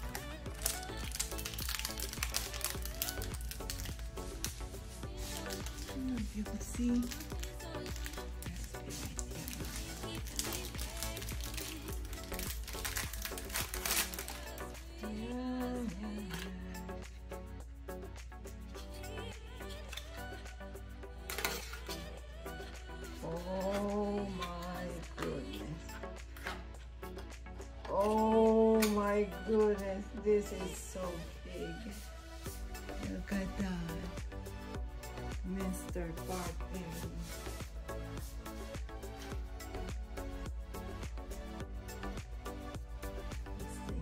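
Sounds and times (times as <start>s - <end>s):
plastic wrap crinkling: 0.0s - 15.0s
background music: 0.0s - 44.0s.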